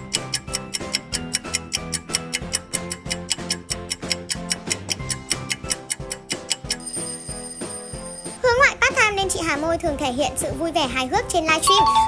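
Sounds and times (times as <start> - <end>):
clock ticking: 0.0 - 8.1
high-pitched voice: 8.4 - 12.0
light plucked tune: 11.5 - 12.0.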